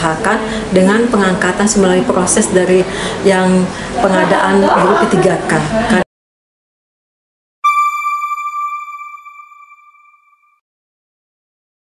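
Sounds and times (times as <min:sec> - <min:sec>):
bright electronic chime: 0:07.6 - 0:10.6.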